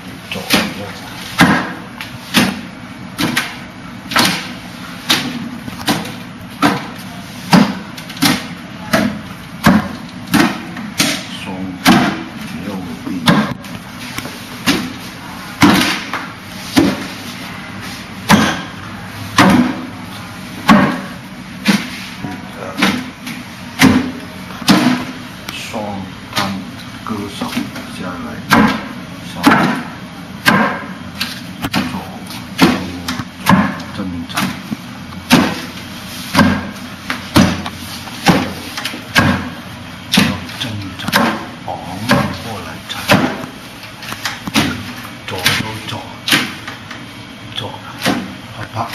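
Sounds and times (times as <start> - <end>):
sharp wooden knocks: 1.4 - 1.8, 7.5 - 11.2, 11.8 - 12.2, 19.4 - 19.8, 20.7 - 21.1, 28.5 - 29.8, 30.4 - 30.9, 32.6 - 34.5, 35.3 - 35.7, 36.3 - 36.7, 37.3 - 38.6, 39.2 - 40.4, 41.0 - 41.5.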